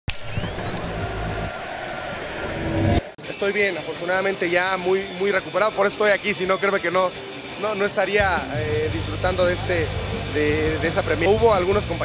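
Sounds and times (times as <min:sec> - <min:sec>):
rushing whoosh: 0:01.1 - 0:03.2.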